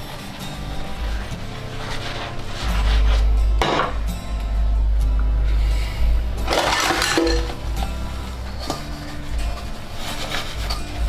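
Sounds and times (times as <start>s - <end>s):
sponge scrubbing dishes: 0.0s - 4.1s, 6.4s - 11.0s
background music: 0.0s - 11.0s
crockery clinking: 6.5s - 7.7s.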